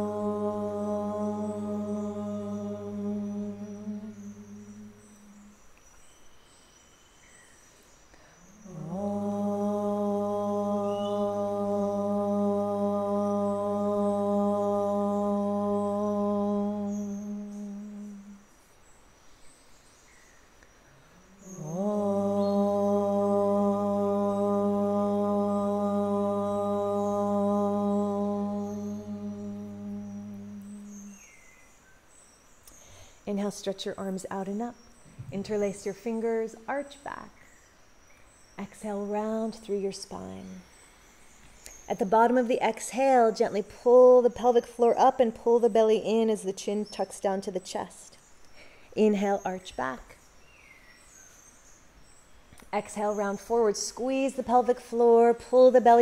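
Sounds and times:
woman chanting om: 0.0s - 5.7s, 8.4s - 18.5s, 21.4s - 31.4s, 38.6s - 40.8s, 41.7s - 48.2s, 52.8s - 56.0s.

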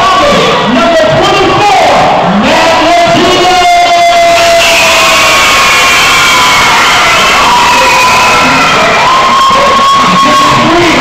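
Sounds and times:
crowd cheering and shouting: 0.0s - 11.0s
long held shouts: 2.4s - 11.0s.

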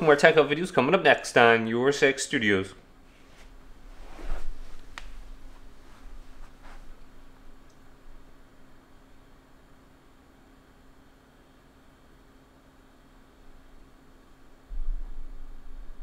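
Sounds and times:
faint hiss with low hum: 0.0s - 16.0s.

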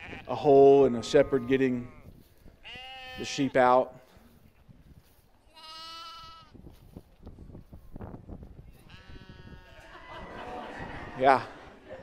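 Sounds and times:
sheep bleating: 0.0s - 3.8s, 5.5s - 6.5s, 8.8s - 10.0s.

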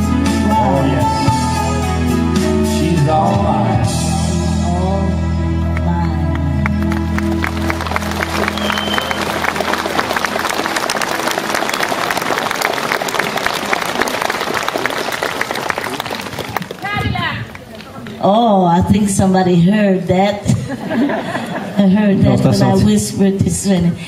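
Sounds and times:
music chord: 4.3s - 12.3s
audience applauding: 6.3s - 18.1s.

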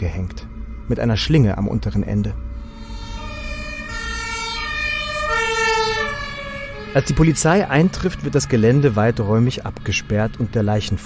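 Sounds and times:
two-tone emergency siren: 0.5s - 11.0s.

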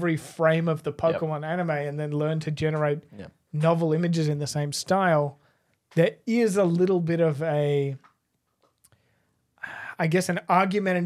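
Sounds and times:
man speaking into a microphone: 0.0s - 8.1s, 9.7s - 11.0s.

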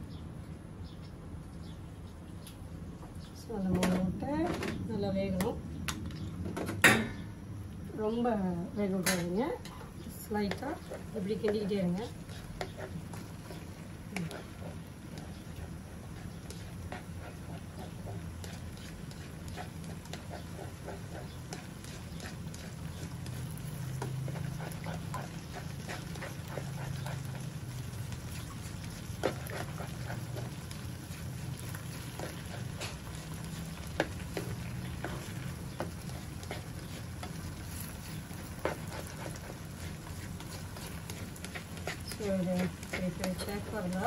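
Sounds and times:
spatula scraping a wok: 9.6s - 28.0s, 28.7s - 44.0s.

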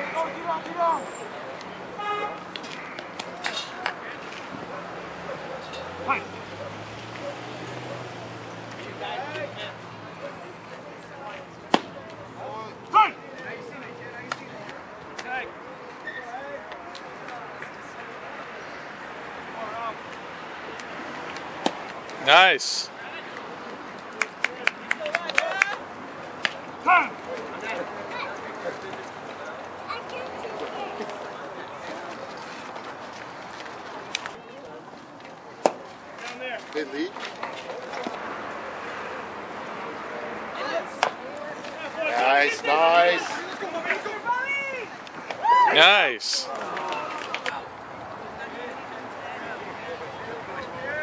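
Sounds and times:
distant voices chattering: 0.0s - 51.0s
players shouting: 12.4s - 13.2s, 22.1s - 22.9s, 26.8s - 27.6s, 41.9s - 47.3s.

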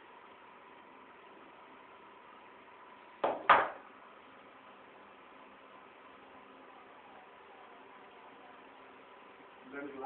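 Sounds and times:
faint constant tone: 0.0s - 10.0s.

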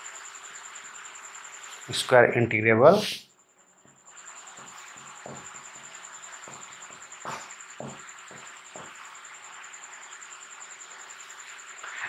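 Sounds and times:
faint room hiss: 0.0s - 6.4s
insect pulsing trill: 0.0s - 12.0s.

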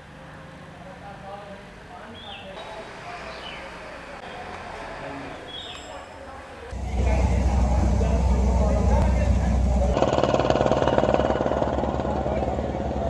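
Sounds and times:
indistinct voices: 0.0s - 13.0s
low steady rumble: 6.7s - 13.0s
tractor diesel engine idling: 6.7s - 13.0s.

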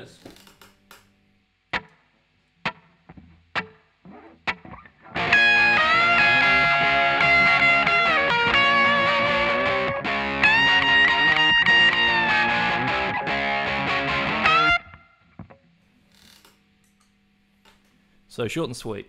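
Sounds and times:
backing track: 2.6s - 15.0s
electric guitar lead solo: 2.6s - 15.5s.

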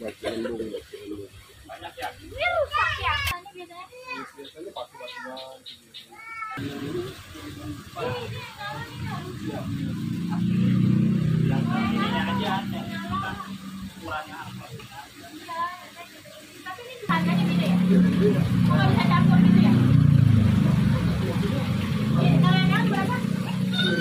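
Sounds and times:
indistinct voices talking: 0.0s - 24.0s.

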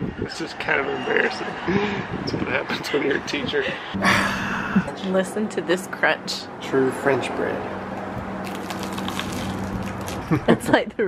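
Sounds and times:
crusty bread crunching being chewed: 8.4s - 10.4s.

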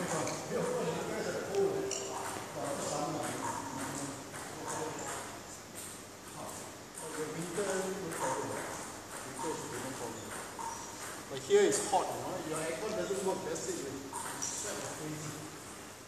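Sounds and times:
indistinct voices talking: 0.0s - 5.7s.

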